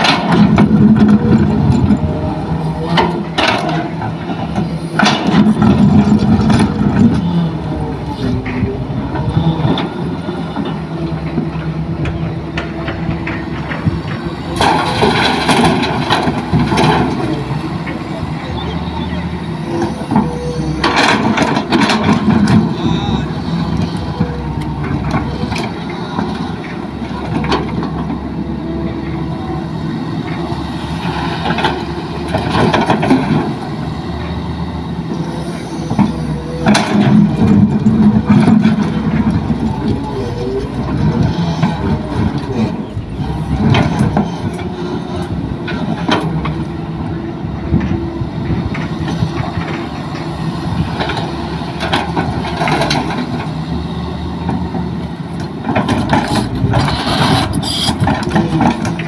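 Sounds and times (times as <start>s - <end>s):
excavator diesel engine running: 0.0s - 59.0s.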